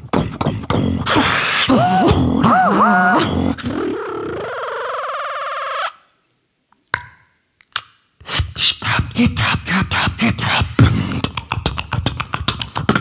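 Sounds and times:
beatboxing into microphone: 0.0 - 4.6, 8.2 - 13.0.

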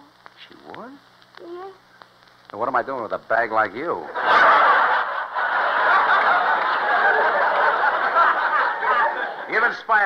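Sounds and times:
studio audience laughing: 4.0 - 9.8.

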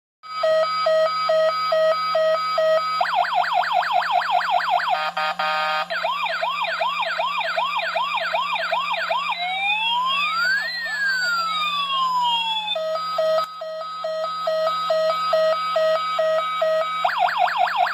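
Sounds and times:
toy electronic siren: 0.2 - 17.9.

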